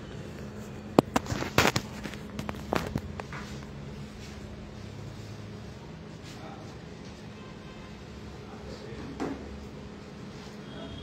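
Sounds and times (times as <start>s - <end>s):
sharp clicks and knocks: 0.9s - 3.4s.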